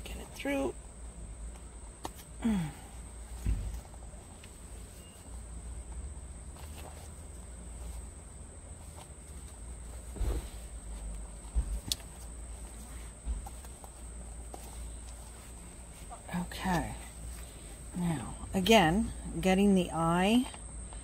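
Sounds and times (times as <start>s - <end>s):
fabric rustling and rubbing: 0.0s - 19.2s.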